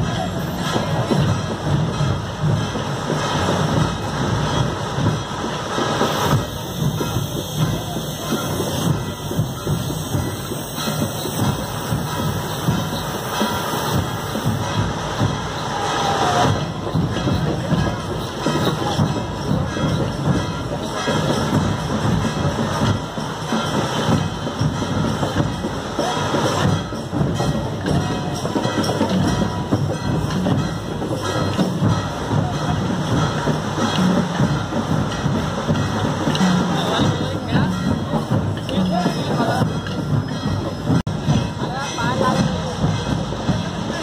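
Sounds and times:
loud continuous drumming: 0.0 - 44.0
street crowd noise: 0.0 - 44.0.

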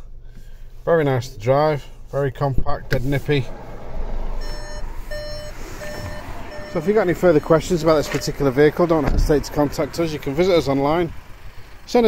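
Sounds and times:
low background rumble: 0.0 - 12.0
electronic warning beeps: 4.4 - 9.0.

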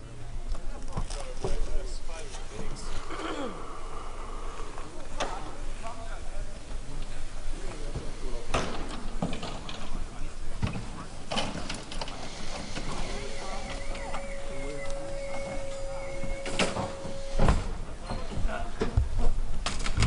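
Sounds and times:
distant people talking: 0.0 - 19.4.

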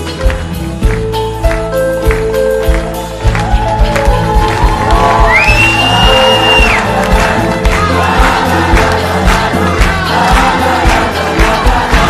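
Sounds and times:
audience clapping along: 0.0 - 12.0
live band playing upbeat music: 0.0 - 12.0.

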